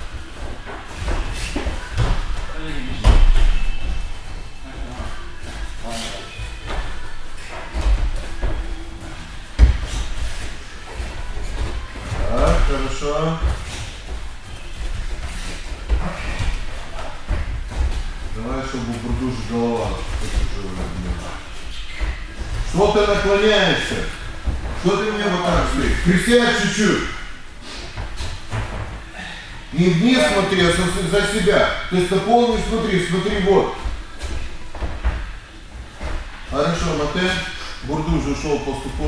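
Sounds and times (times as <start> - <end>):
bodies thudding on padded mats: 0.0 - 5.8, 6.4 - 26.4, 27.9 - 29.1, 32.0 - 37.4
voices talking: 29.2 - 33.9.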